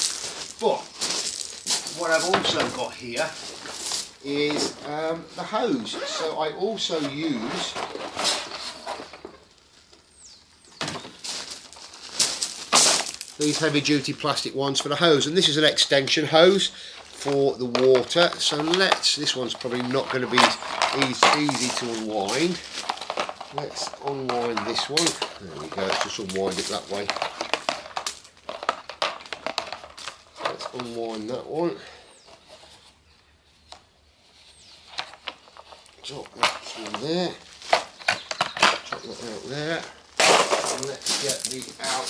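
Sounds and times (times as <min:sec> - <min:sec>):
fabric bag rustling and scraping: 0:00.0 - 0:09.3, 0:18.0 - 0:31.3.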